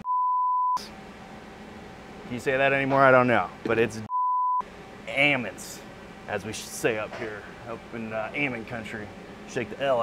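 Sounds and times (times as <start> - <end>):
censor bleep: 0.0 - 0.9, 4.1 - 4.6
faint background hum: 0.8 - 10.0.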